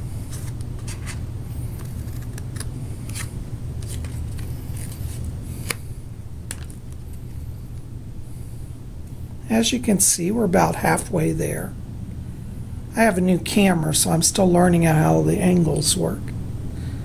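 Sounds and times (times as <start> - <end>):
steady low hum: 0.0 - 17.0
cardboard rustling: 0.2 - 5.8.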